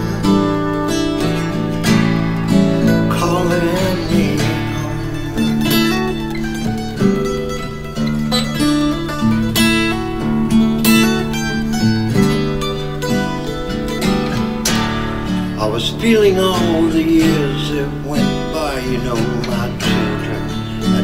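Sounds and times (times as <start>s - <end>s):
acoustic guitars strummed and plucked: 0.0s - 21.0s.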